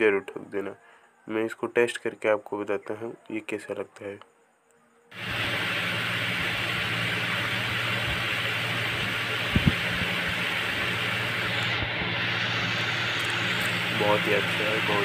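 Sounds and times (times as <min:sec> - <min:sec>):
loud hissing noise: 0:05.1 - 0:15.0
low hum: 0:05.1 - 0:15.0.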